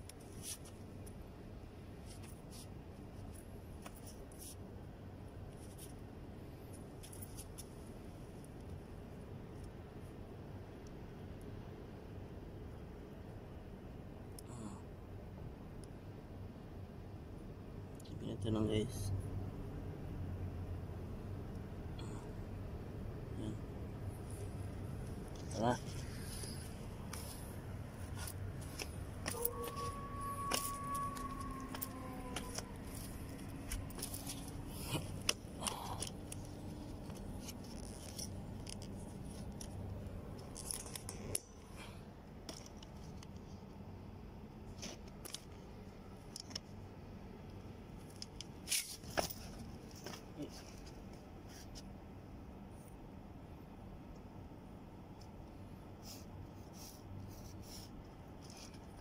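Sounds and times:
low steady hum: 0.0s - 59.0s
faint held tone: 29.2s - 33.3s.

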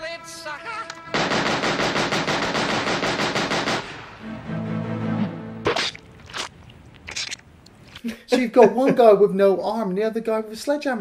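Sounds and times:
automatic gunfire burst: 1.1s - 4.0s
sharp gunshot cracks: 1.2s - 4.2s.

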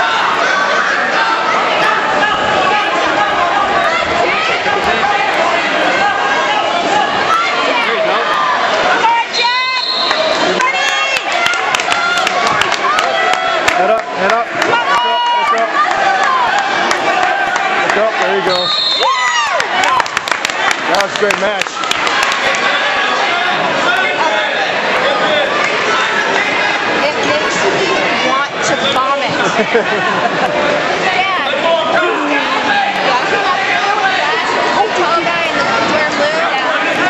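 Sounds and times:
crowd shouting: 0.0s - 37.0s
loud yells: 14.6s - 20.1s.

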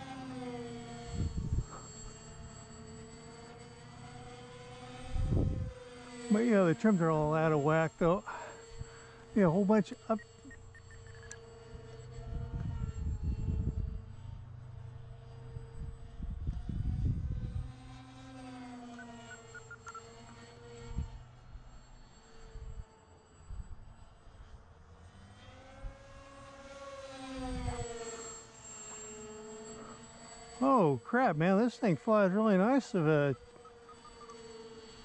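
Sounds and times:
electric motors and propellers whining: 0.0s - 35.0s
wind buffeting on microphone: 5.2s - 5.7s, 12.2s - 14.1s, 15.7s - 17.7s.

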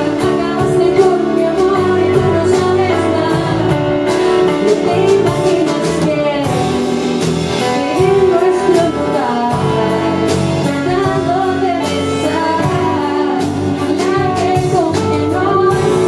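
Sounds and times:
instrumental accompaniment with beat: 0.0s - 16.0s
woman singing into microphone: 0.0s - 16.0s.

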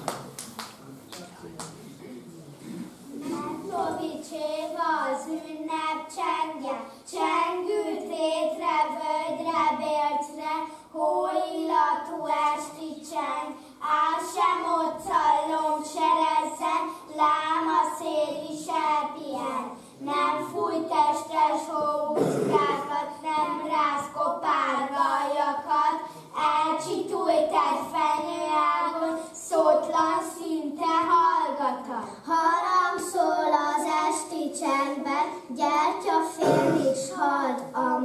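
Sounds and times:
children singing: 20.2s - 26.0s, 32.4s - 38.0s.

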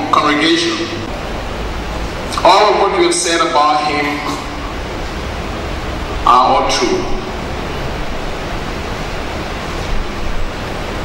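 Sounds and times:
air conditioning unit running: 0.0s - 11.0s
electric fan running: 0.0s - 11.0s.

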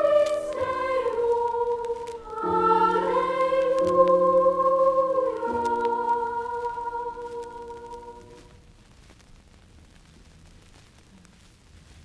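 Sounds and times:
choir holding a chord: 0.0s - 8.5s
vinyl crackles: 0.0s - 12.0s
vinyl surface hiss and rumble: 0.0s - 12.0s.

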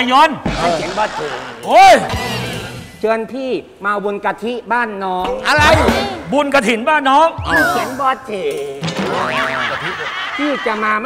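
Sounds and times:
comic boing sound effect: 8.9s - 9.9s.

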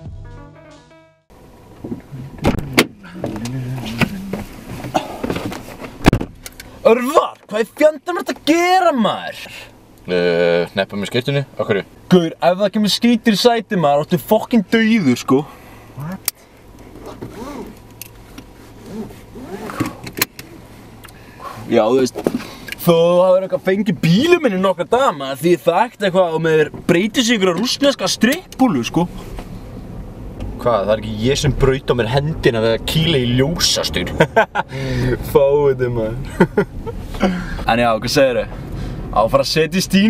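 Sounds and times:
car engine hum: 1.3s - 40.0s
rustling and shuffling on seat: 1.7s - 6.8s, 16.7s - 22.8s, 29.0s - 29.7s, 36.8s - 37.7s
car door latch clicks: 1.8s - 4.1s, 19.7s - 20.5s
car door shutting with thud: 1.8s - 6.4s.

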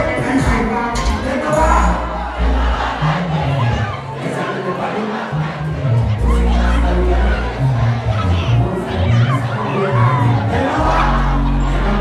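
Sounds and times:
crowd shouting and cheering: 0.0s - 12.0s
loud dancehall music: 0.0s - 12.0s.

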